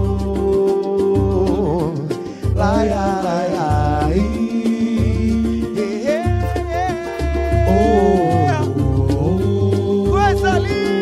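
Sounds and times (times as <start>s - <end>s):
cavaquinho strumming: 0.0s - 11.0s
low held bass notes: 2.6s - 10.5s
gliding melody line: 2.7s - 9.4s
tambourine: 4.1s - 11.0s.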